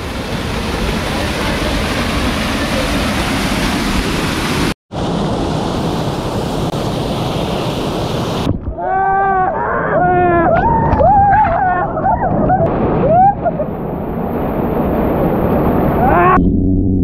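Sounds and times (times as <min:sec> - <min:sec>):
waterfall rushing into pool: 0:00.0 - 0:08.5.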